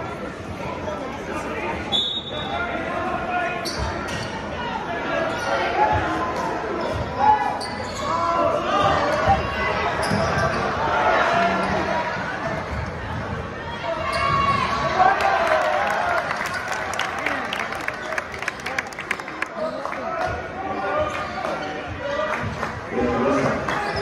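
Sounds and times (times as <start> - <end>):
spectators chattering: 0.0 - 24.0.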